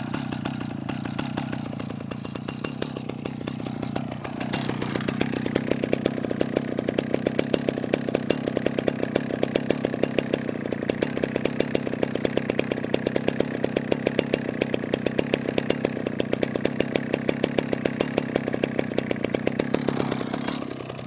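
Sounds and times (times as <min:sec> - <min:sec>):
chainsaw engine idling: 0:00.0 - 0:21.0.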